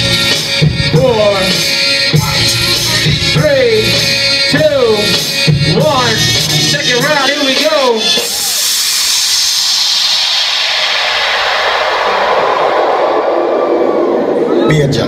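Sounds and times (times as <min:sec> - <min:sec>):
music beat: 0:00.0 - 0:11.1
noise sweep hiss falling in pitch: 0:08.2 - 0:14.6.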